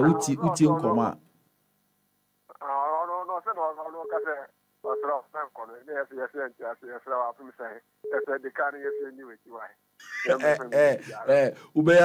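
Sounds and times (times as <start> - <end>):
person talking on phone line: 2.5 - 12.0.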